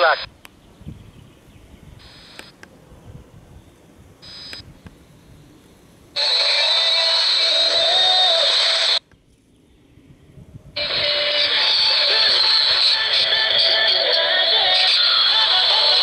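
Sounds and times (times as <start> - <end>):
radio station music: 0.0 - 0.3, 6.2 - 9.0, 10.8 - 16.0
radio hiss: 0.0 - 0.4, 2.0 - 2.6, 4.2 - 5.2, 6.1 - 9.0.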